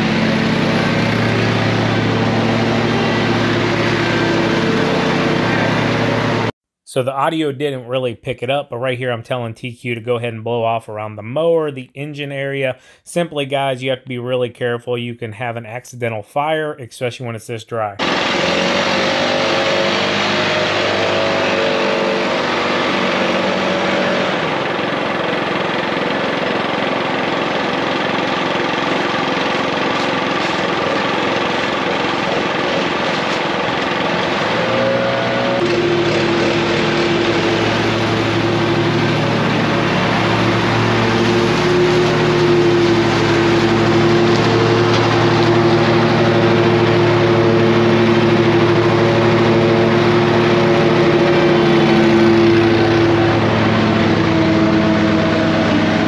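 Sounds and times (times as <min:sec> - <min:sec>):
small engines running: 0:00.0 - 0:06.5, 0:18.0 - 0:56.0
leaf blower running: 0:00.0 - 0:06.6, 0:18.0 - 0:56.0.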